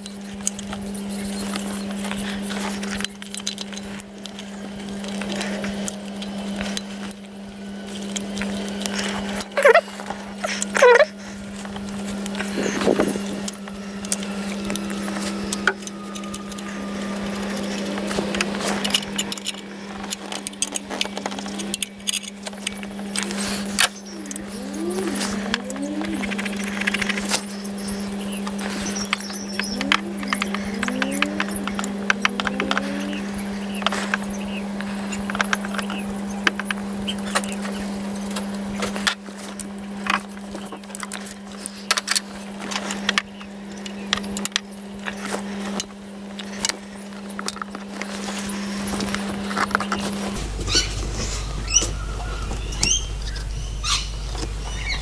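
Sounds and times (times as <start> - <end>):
steady low hum: 0.0 - 55.0
short rising squeaks: 50.1 - 54.1.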